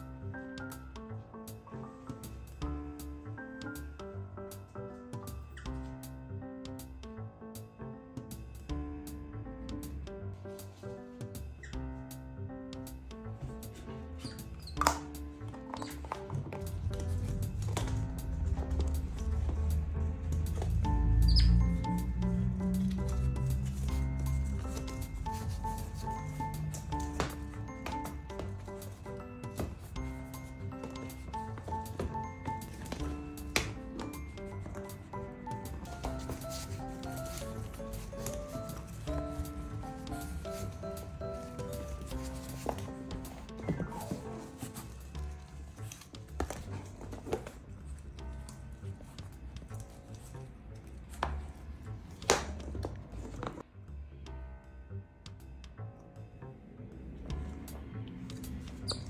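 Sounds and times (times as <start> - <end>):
background music with held notes: 0.0 - 59.0.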